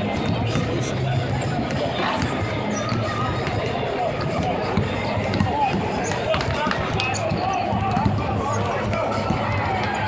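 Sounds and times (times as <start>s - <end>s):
people talking: 0.0s - 10.0s
basketballs bouncing on hardwood: 4.2s - 8.3s.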